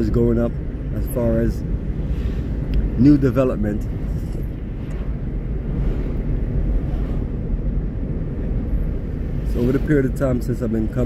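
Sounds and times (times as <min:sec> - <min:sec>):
road noise: 0:00.0 - 0:11.0
vehicle engine rumble: 0:00.0 - 0:11.0.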